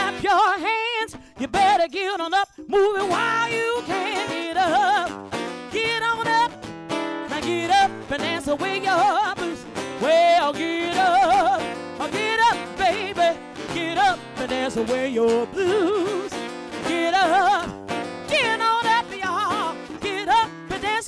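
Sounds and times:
acoustic guitar: 0:00.0 - 0:21.0
woman singing with vibrato: 0:00.0 - 0:21.0.

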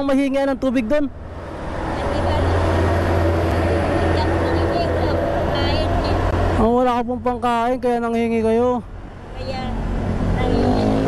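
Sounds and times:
low traffic hum: 0:00.0 - 0:11.0
vehicle passing by: 0:00.6 - 0:11.0.

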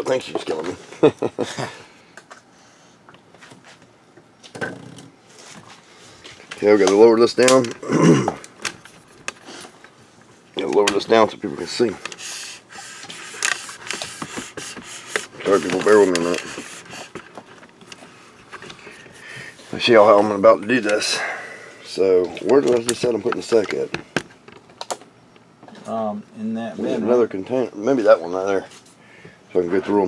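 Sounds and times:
quiet handling noise: 0:02.1 - 0:12.2, 0:13.0 - 0:21.1, 0:21.9 - 0:26.0
glass enclosure scraping: 0:12.7 - 0:17.4
objects clicking and tapping: 0:13.0 - 0:18.9
man talking: 0:15.4 - 0:16.5, 0:29.5 - 0:30.0.

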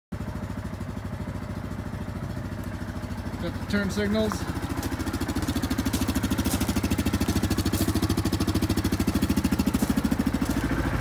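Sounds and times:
engine idling: 0:00.1 - 0:11.0.

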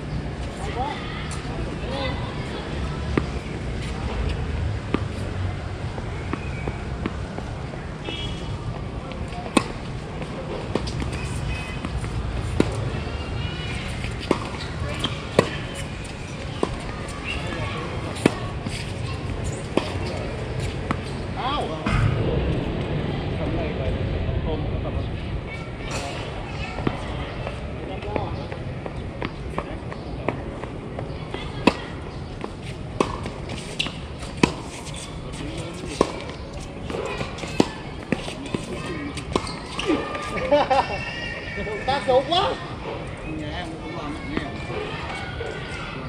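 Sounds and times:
faint voices: 0:00.0 - 0:46.0
tennis ball struck with racquets: 0:31.6 - 0:35.3.

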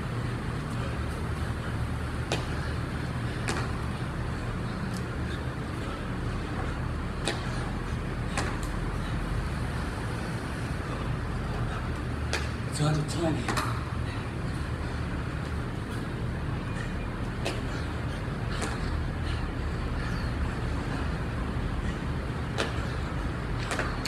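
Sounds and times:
low machinery hum: 0:00.0 - 0:24.0
hands and feet tapping on concrete: 0:03.4 - 0:03.8, 0:07.2 - 0:07.6, 0:08.3 - 0:08.8, 0:22.4 - 0:24.0.

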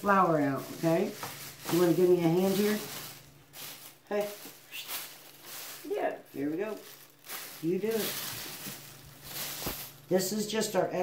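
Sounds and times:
plastic bag rustling and crinkling: 0:00.0 - 0:10.6.

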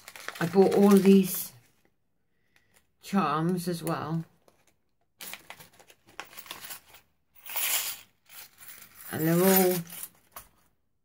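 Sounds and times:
plastic bag crinkling: 0:00.0 - 0:01.6, 0:04.5 - 0:07.1.

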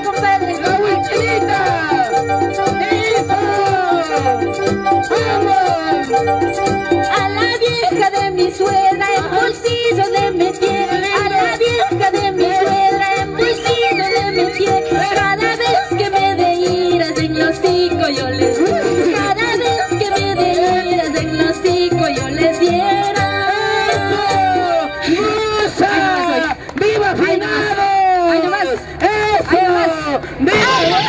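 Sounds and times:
electronic keyboard folk dance music: 0:00.0 - 0:31.0.

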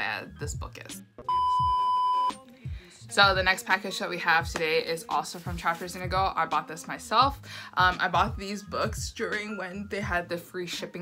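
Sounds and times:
test-tone beep: 0:01.3 - 0:02.4.

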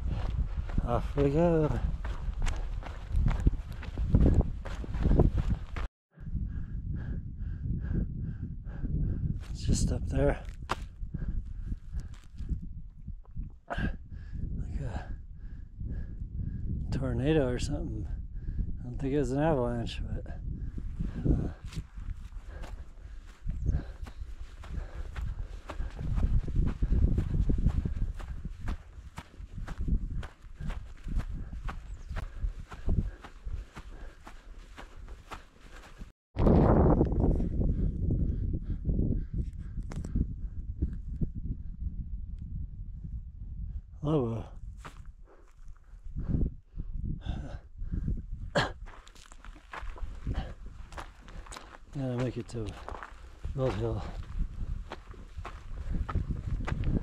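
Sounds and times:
footsteps on grass: 0:00.0 - 0:05.9, 0:21.4 - 0:36.1, 0:48.9 - 0:57.0
breathy voice-like sounds: 0:13.6 - 0:16.2, 0:21.0 - 0:36.1, 0:47.1 - 0:56.0.

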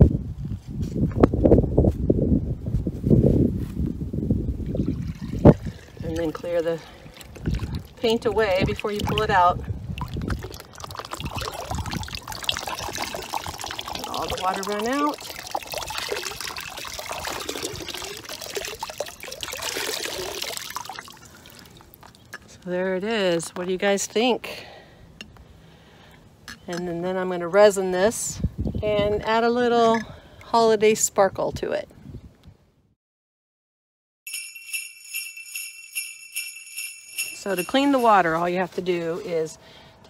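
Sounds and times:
water sloshing in plastic bucket: 0:04.7 - 0:22.6.

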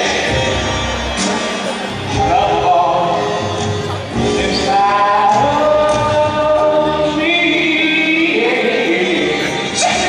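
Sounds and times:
man singing into a microphone: 0:00.0 - 0:10.0.

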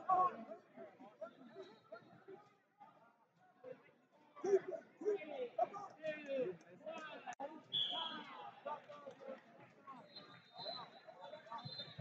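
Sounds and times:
coaches and spectators calling out: 0:00.0 - 0:12.0.

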